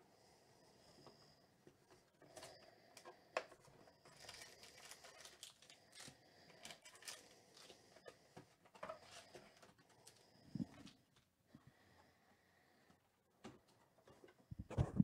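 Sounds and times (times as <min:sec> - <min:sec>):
cardboard box and foil packs rustling: 0:03.5 - 0:11.2.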